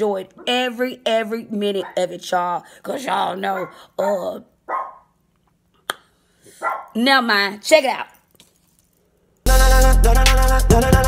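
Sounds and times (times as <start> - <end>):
dog barking: 1.8 - 2.2, 3.5 - 3.9, 4.7 - 5.2, 6.6 - 7.0.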